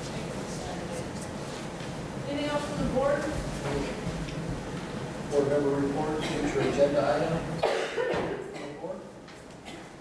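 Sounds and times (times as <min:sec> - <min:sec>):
person coughing: 0:06.2 - 0:06.7, 0:07.6 - 0:08.9.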